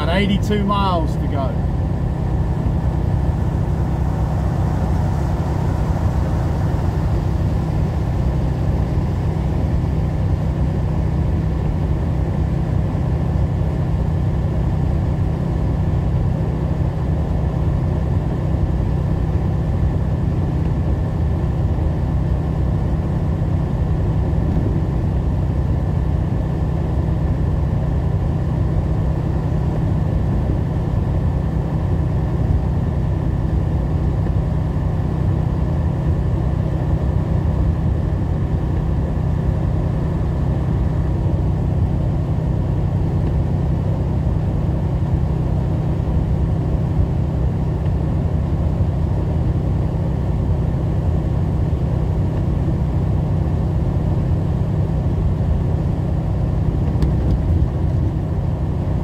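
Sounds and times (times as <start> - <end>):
truck engine drone: 0.0 - 59.0.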